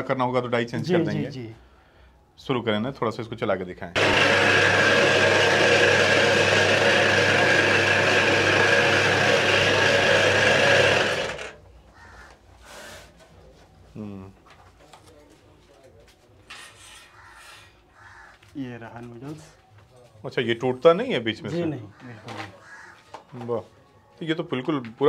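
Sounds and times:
noodle cutting machine whirring: 4.0 - 11.6.

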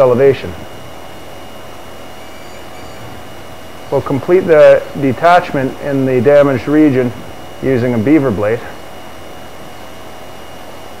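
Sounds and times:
man speaking: 0.0 - 0.7, 3.9 - 8.8
steady background hiss: 0.0 - 10.3
faint high steady tones: 0.0 - 11.0.

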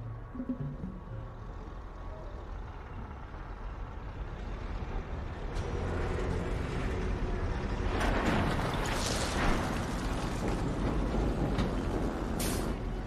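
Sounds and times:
heavy machinery rumbling: 0.0 - 13.0.

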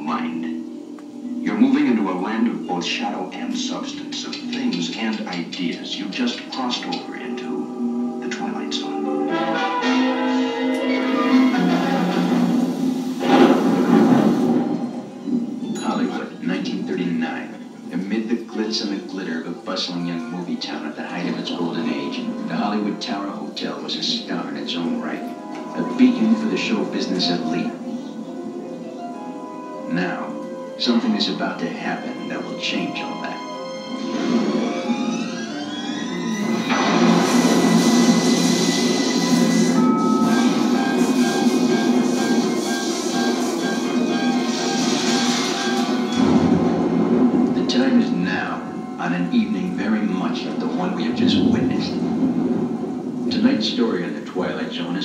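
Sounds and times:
film music with rising tones: 0.0 - 55.0
noisy rushing surge: 11.6 - 15.7, 50.8 - 54.3
loud rush of crashing effects: 12.0 - 15.1, 36.4 - 47.4, 51.0 - 54.2.

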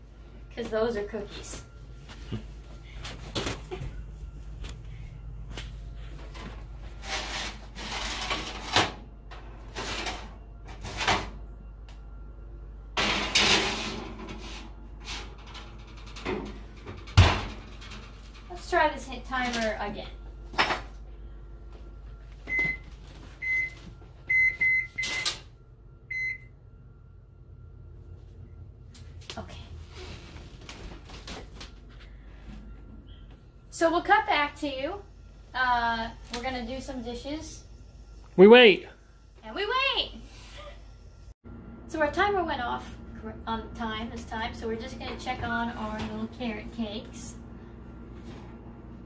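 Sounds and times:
metal baking sheet and utensils clattering: 13.0 - 18.4.

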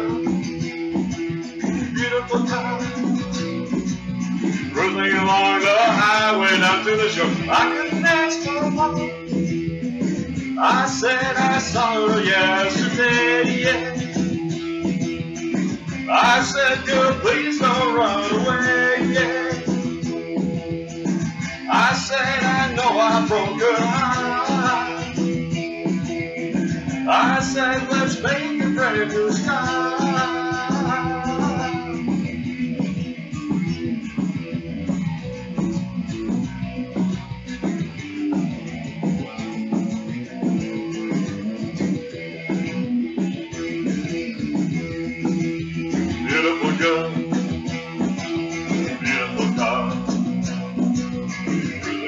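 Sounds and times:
electric guitar strumming chords: 0.0 - 52.0.

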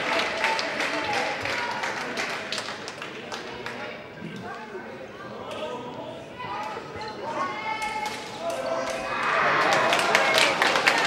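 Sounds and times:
applause and cheering: 0.0 - 3.8, 9.2 - 11.0.

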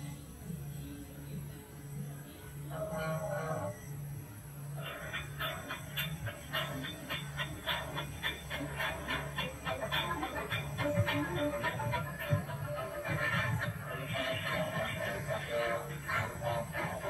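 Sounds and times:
steady low hum: 0.0 - 17.0.

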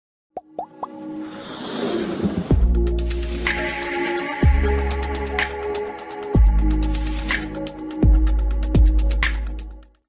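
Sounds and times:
music: 0.4 - 10.0
rising wash of sound: 0.8 - 3.7.

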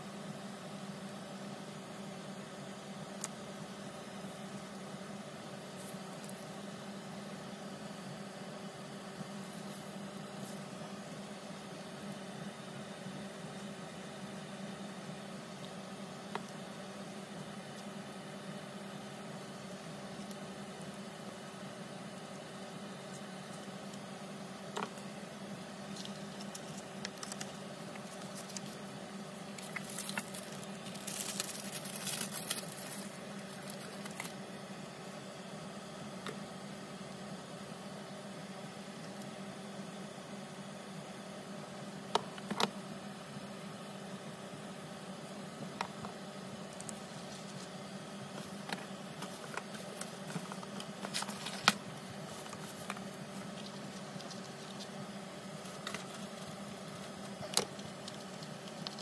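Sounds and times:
steady low hum: 0.0 - 59.0
paper rustling on tabletop: 29.6 - 34.3, 48.4 - 55.0.

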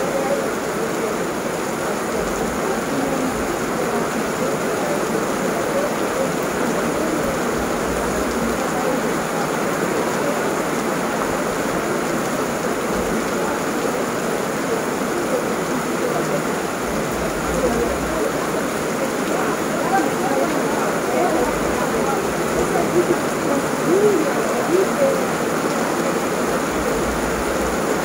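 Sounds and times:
heavy rain falling: 0.0 - 28.0.

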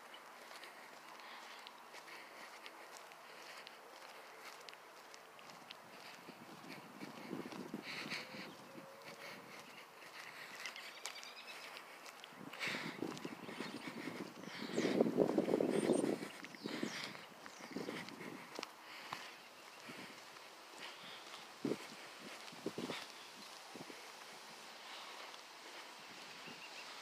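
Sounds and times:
footsteps on gravel: 0.0 - 27.0.

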